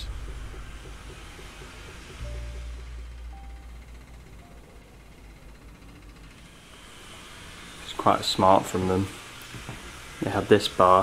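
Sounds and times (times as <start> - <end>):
soft high notes: 0.0 - 6.0
low steady drone: 0.0 - 10.5.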